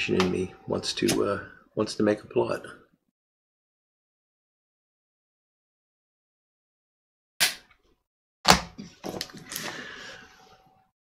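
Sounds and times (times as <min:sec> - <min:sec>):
breathy exhale: 0:09.5 - 0:10.6.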